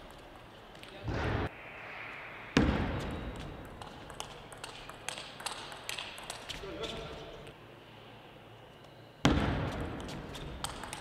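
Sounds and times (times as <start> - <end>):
loud thump: 1.1 - 1.5
table tennis ball bouncing: 2.6 - 6.6, 9.3 - 11.0.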